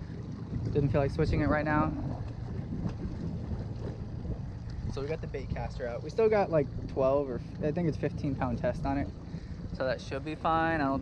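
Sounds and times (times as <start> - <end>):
outboard motor low rumble: 0.0 - 11.0
wind buffeting microphone: 0.0 - 11.0.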